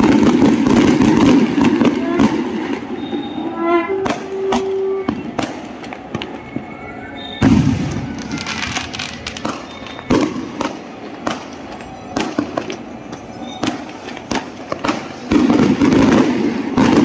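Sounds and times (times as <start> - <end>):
fireworks launching and bursting: 0.0 - 17.0.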